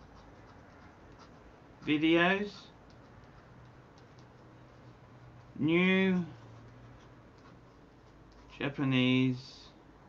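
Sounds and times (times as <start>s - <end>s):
faint clicks and scratches: 0.0s - 8.8s
man speaking: 1.8s - 2.8s, 5.6s - 6.4s, 8.5s - 9.8s.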